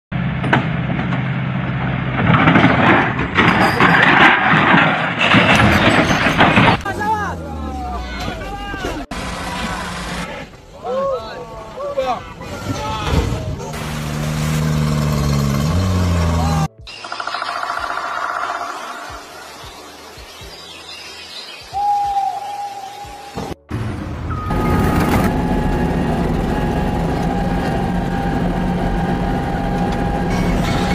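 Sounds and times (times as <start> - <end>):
heavy machinery rumbling: 0.2 - 10.5, 23.7 - 30.9
loud rough mechanical noise: 9.1 - 10.5, 13.7 - 16.7, 24.5 - 30.9
truck diesel engine humming: 13.7 - 16.9, 23.7 - 30.9
machinery whine: 24.1 - 30.9
drawn-out squeal: 24.2 - 30.9.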